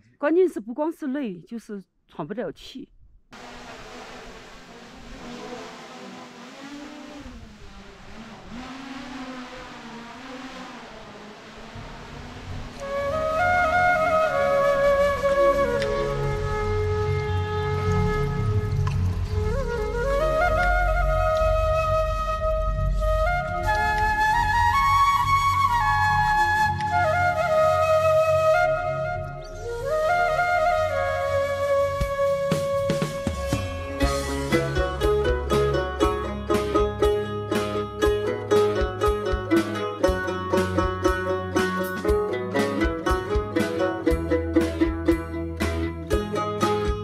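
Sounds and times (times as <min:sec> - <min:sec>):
drone propellers buzzing: 0:03.4 - 0:13.4
low sustained accompaniment: 0:03.4 - 0:32.0.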